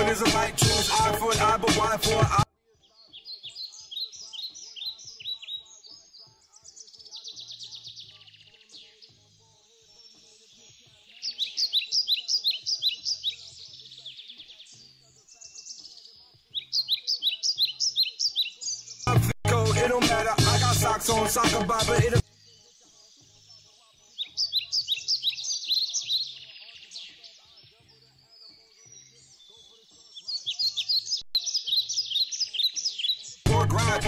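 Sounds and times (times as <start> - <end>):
loud hip hop beat: 0.0 - 2.5, 19.1 - 22.3, 33.5 - 34.0
birds chirping and trilling: 0.0 - 19.2, 19.8 - 34.0
faint soft music: 2.4 - 19.0, 22.2 - 33.5.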